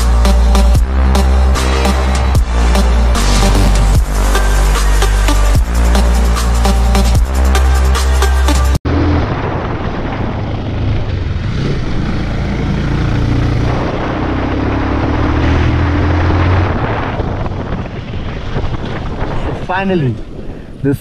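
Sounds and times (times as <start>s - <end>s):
motorcycle engine running: 8.9s - 15.3s
wind noise on microphone: 8.9s - 21.0s.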